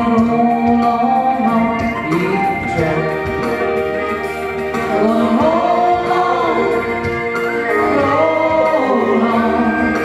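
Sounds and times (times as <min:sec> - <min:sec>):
instrumental accompaniment: 0:00.0 - 0:10.0.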